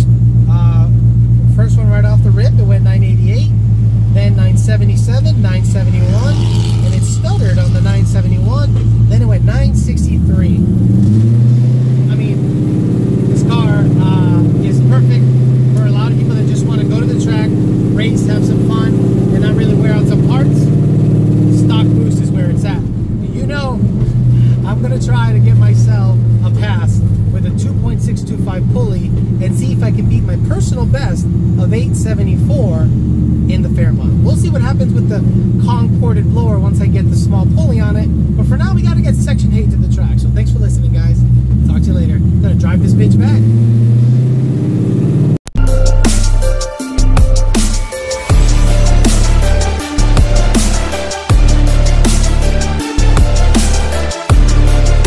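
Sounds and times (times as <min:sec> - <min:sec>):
car engine drone while driving: 0:00.0 - 0:55.0.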